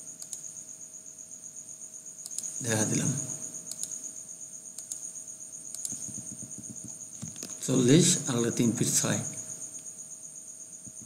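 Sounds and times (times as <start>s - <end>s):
crickets chirring: 0.0s - 11.0s
sharp clicks: 0.2s - 0.4s, 2.2s - 2.6s, 3.7s - 4.0s, 4.8s - 5.0s, 5.7s - 6.2s.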